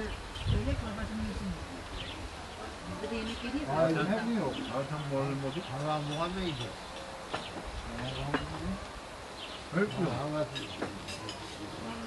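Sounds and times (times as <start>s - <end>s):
distant group chatting: 0.0s - 12.0s.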